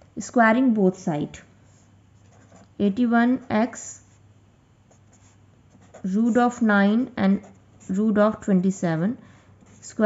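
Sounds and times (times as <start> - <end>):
felt-tip pen scratching on paper: 2.2 - 2.7, 4.9 - 6.6.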